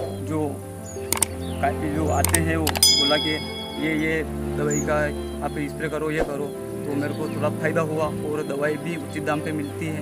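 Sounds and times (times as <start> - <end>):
background music: 0.0 - 10.0
sharp clicks: 1.1 - 1.3, 2.2 - 2.9
man talking: 1.6 - 10.0.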